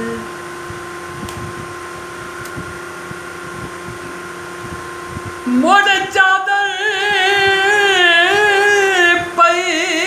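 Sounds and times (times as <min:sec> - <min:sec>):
appliance humming: 0:00.0 - 0:10.0.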